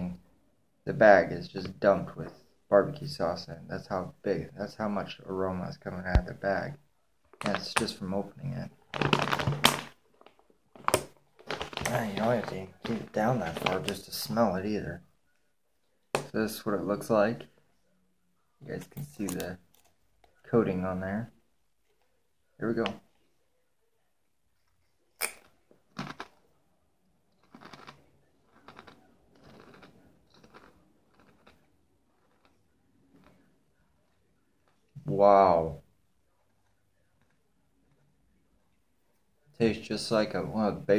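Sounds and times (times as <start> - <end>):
foil chip bag crinkling: 8.9 - 14.0
chewing crunchy potato chip: 25.2 - 26.5, 27.3 - 33.5.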